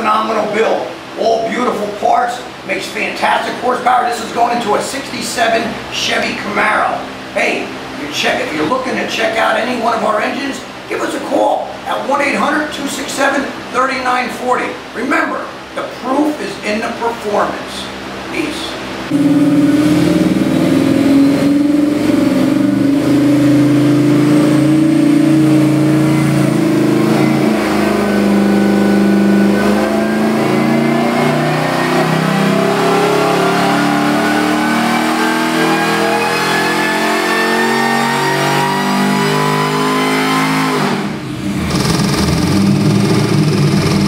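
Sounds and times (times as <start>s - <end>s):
supercharged engine revving: 19.1s - 44.0s.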